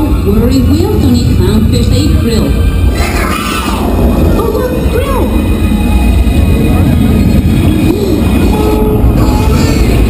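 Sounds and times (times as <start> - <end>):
heavy low rumble: 0.0 - 10.0
music over loudspeakers: 0.0 - 10.0.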